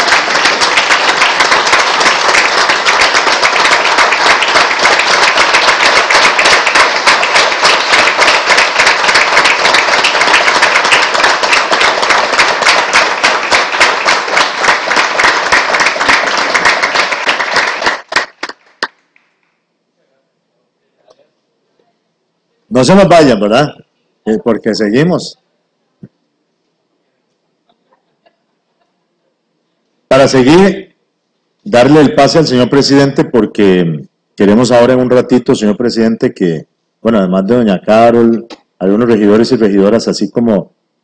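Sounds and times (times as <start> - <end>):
crowd applauding: 0.0 - 19.4.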